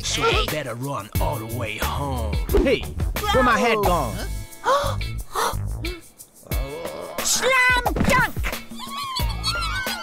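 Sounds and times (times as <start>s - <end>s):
backing music with a beat: 0.0s - 7.7s
cartoon voice crying: 8.7s - 10.0s.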